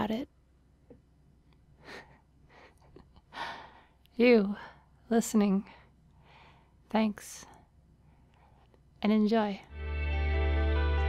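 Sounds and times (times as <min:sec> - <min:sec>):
person breathing in: 0:01.8 - 0:04.0, 0:05.8 - 0:06.8.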